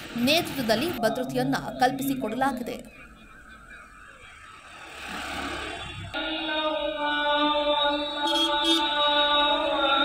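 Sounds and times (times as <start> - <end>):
traffic hiss and rumble: 0.0 - 6.2.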